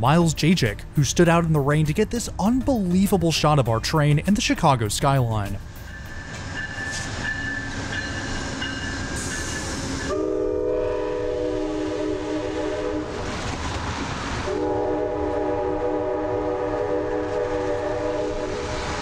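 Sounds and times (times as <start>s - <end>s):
moving train rumble: 0.0s - 19.0s
locomotive horn blasts: 9.2s - 13.3s, 14.4s - 19.0s.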